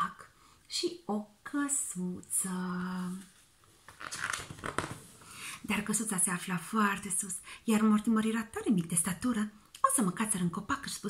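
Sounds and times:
paper pages flipping: 0:03.1 - 0:05.2.

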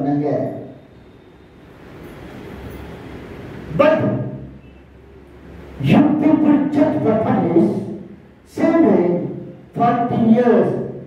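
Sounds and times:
man's voice through a microphone: 0:00.0 - 0:00.8, 0:03.7 - 0:04.6, 0:05.8 - 0:11.0.

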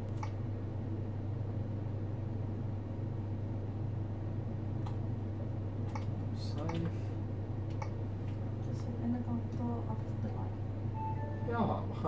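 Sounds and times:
electrical equipment humming: 0:00.0 - 0:12.0.

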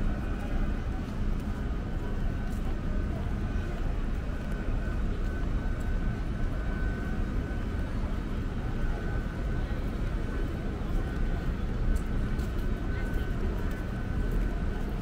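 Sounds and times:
faint high whine: 0:00.0 - 0:14.7
low city rumble: 0:00.0 - 0:15.0.

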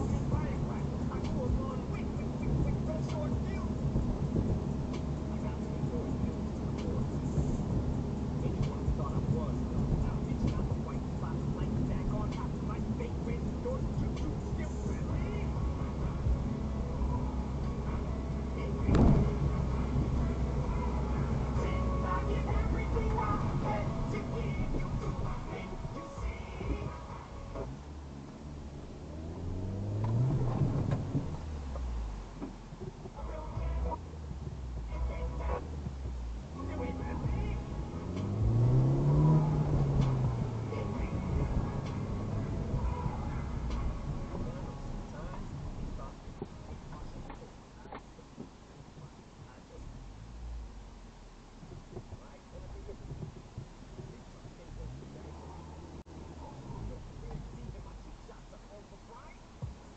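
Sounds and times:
car road and engine rumble: 0:00.0 - 0:59.9
faint voices: 0:32.7 - 0:50.3, 0:51.6 - 0:59.9.

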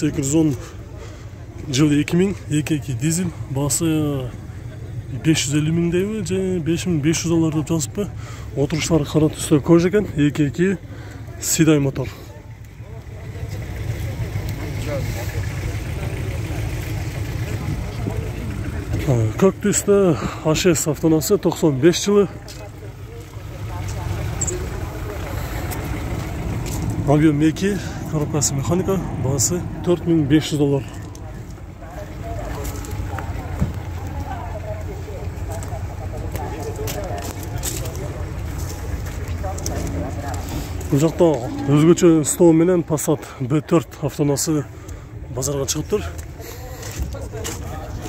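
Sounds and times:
car engine idling: 0:00.0 - 0:48.0
faint voices: 0:00.0 - 0:48.0.

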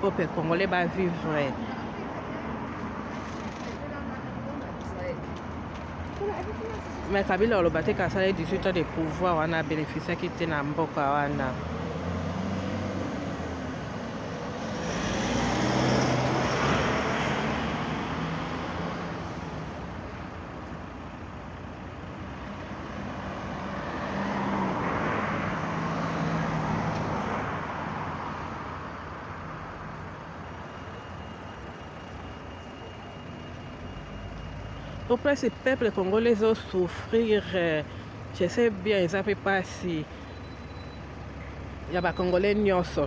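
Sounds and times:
motor vehicles passing: 0:00.0 - 0:43.0.

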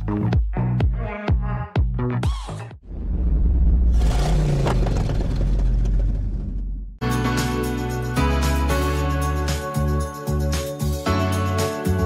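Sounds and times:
rumbling transition sound effect: 0:02.8 - 0:07.0.

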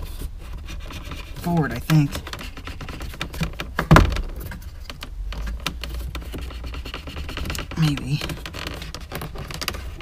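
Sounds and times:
plastic trim clicks and knocks: 0:02.0 - 0:10.0.

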